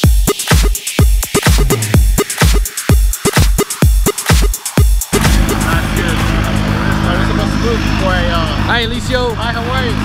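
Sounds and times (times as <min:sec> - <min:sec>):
engine running steadily: 0:05.1 - 0:10.0.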